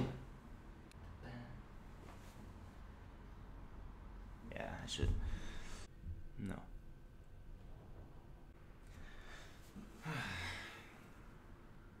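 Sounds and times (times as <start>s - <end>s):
man sighing: 9.9s - 11.0s.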